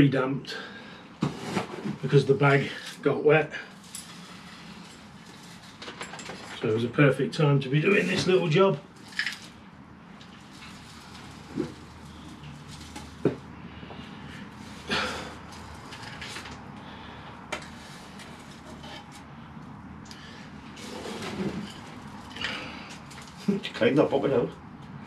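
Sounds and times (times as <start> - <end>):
gritty soil rustle: 7.8 - 16.7, 20.6 - 24.4.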